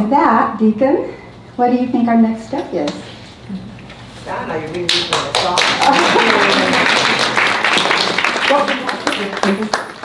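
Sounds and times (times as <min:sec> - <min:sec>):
audience clapping: 0:04.9 - 0:10.0.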